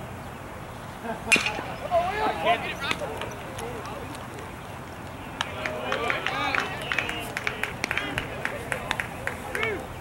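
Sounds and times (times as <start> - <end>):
spectators clapping: 2.8 - 9.9.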